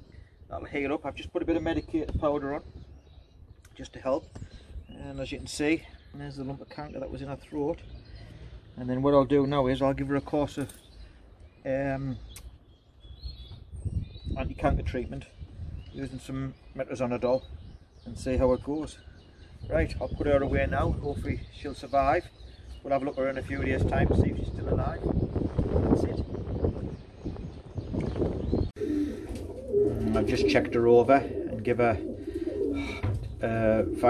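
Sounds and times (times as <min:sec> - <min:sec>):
sharp click: 0:12.3 - 0:12.5
pigeon cooing: 0:28.8 - 0:34.0.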